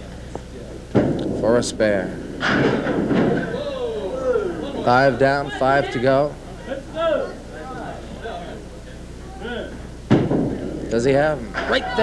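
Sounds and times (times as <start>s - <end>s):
bowling ball knock: 0.9s - 3.7s, 10.1s - 11.8s.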